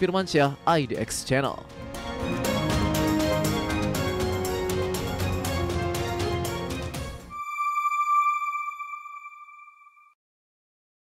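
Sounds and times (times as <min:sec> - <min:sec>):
background music: 0:00.0 - 0:10.0
high electronic chime: 0:07.3 - 0:10.1.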